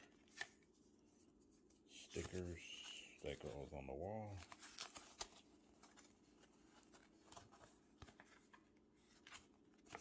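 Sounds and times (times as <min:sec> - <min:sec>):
paper sticker sheet rustling: 0:00.0 - 0:10.0.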